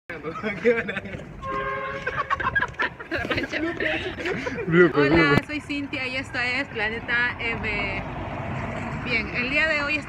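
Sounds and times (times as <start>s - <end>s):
man and woman laughing chattering: 0.1s - 5.4s.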